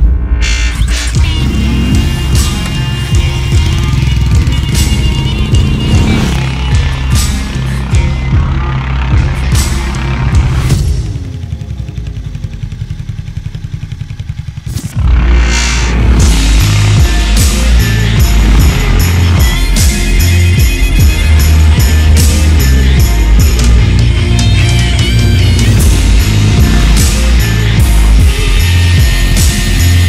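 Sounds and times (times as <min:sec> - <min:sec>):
music with a heavy beat: 0:00.0 - 0:11.7, 0:14.7 - 0:30.0
motorcycle engine idling: 0:01.2 - 0:15.3, 0:16.2 - 0:30.0.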